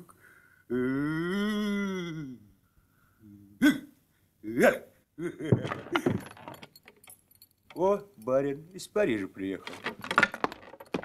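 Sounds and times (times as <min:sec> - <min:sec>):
man hiccuping: 0:03.6 - 0:03.9.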